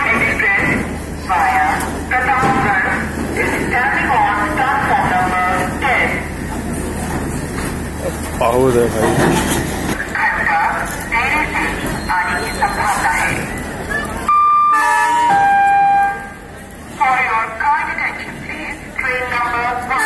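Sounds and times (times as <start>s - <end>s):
voices: 0.0s - 14.3s, 16.1s - 20.0s
railway horn: 14.3s - 16.5s.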